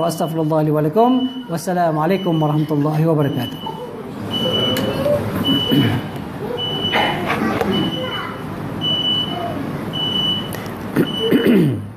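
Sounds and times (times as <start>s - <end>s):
high electronic beeps: 0.0s - 6.0s
steady background noise: 0.0s - 11.9s.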